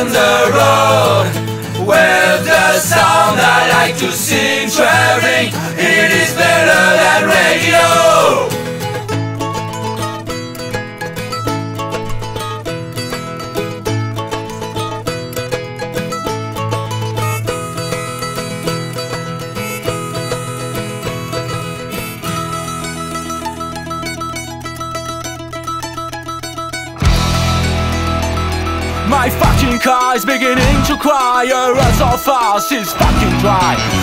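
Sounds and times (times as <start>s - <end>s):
guitar and bass: 0.0s - 32.2s, 32.9s - 34.0s
mandolin picking fast melody: 0.0s - 34.0s.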